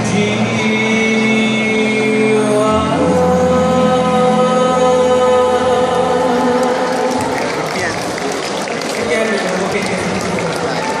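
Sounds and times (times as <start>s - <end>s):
vocal quartet singing chord: 0.0s - 7.4s
audience voices: 0.0s - 11.0s
audience applause: 6.5s - 11.0s.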